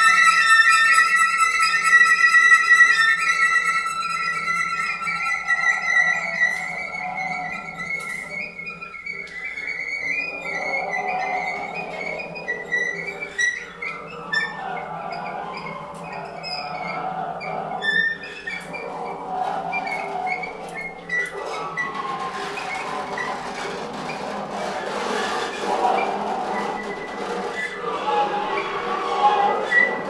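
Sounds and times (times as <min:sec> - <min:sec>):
squeaks and scrapes on drum heads: 0:00.0 - 0:30.0.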